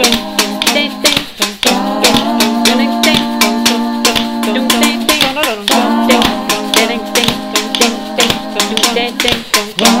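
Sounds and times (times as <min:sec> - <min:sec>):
a cappella voices singing: 0:00.0 - 0:10.0
kitchen utensil percussion beat: 0:00.0 - 0:10.0.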